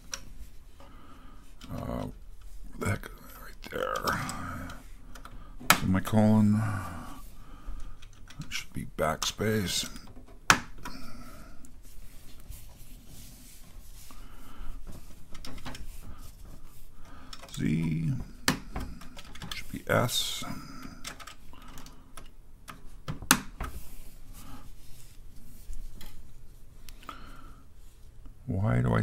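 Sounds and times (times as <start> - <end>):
man murmuring: 1.6 - 4.9, 5.8 - 7.3, 17.5 - 21.1.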